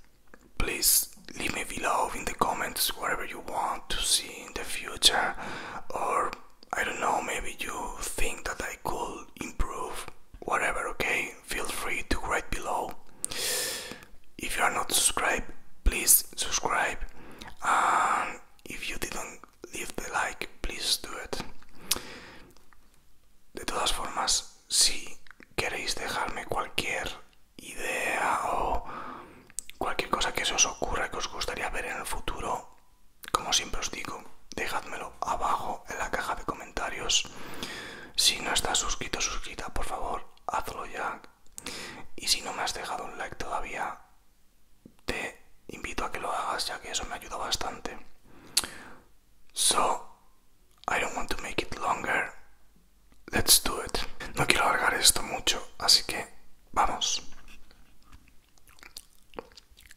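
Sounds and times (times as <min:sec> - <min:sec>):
man whispering: 0:00.3 - 0:22.0, 0:23.5 - 0:44.2, 0:45.0 - 0:48.7, 0:49.5 - 0:52.6, 0:53.2 - 0:58.2.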